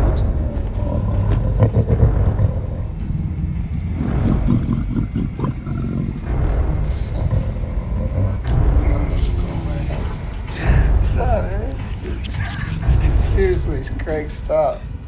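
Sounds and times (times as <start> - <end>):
monster roaring and growling: 0.0 - 11.0
heavy low rumble: 0.0 - 15.0.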